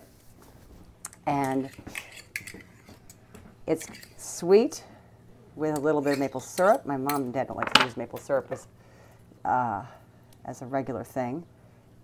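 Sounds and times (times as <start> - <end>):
knife scraping spoon: 1.3 - 4.3, 5.8 - 7.2.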